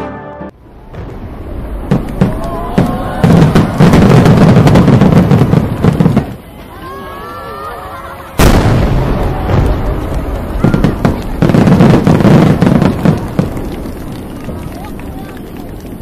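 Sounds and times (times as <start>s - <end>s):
fireworks bangs and crackling: 0.6s - 7.3s, 8.2s - 16.0s.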